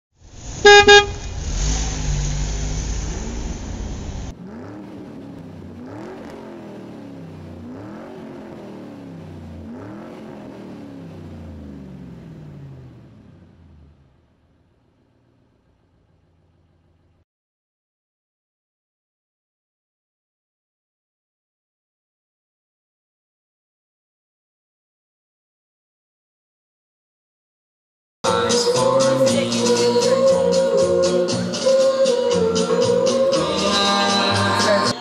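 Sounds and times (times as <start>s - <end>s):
engine revving: 0.2s - 17.0s
car engine running loudly: 0.2s - 17.2s
car horn toots: 0.5s - 1.4s.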